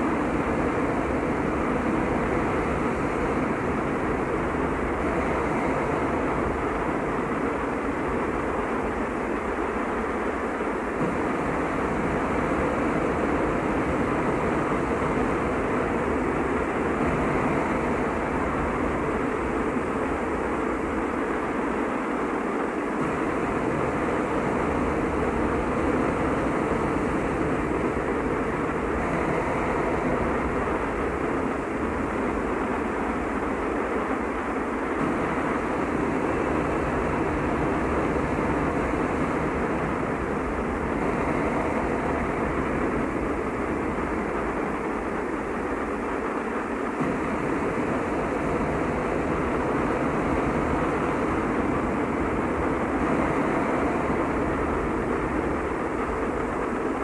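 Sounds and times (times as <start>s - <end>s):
dense noise drone: 0.0s - 57.0s.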